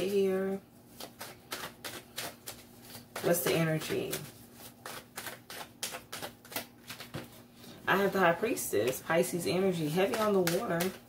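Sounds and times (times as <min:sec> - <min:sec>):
cards being shuffled: 0:00.9 - 0:07.4, 0:10.0 - 0:11.0.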